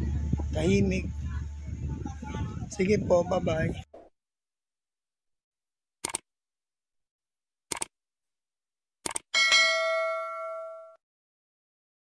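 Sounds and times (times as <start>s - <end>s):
notification bell ding: 9.4s - 11.0s.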